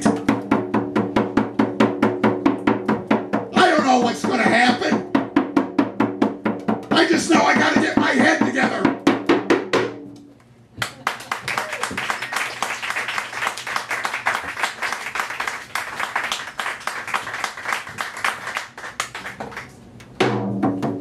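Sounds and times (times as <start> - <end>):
audience applauding: 10.8 - 19.8.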